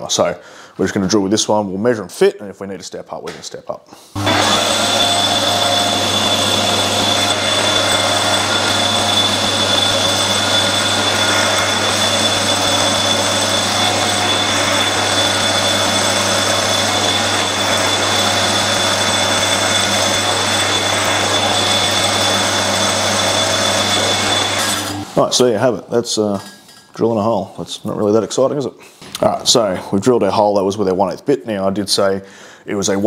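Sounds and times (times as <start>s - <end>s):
metal lathe humming: 4.2s - 25.2s
drill boring steel whine: 4.2s - 25.4s.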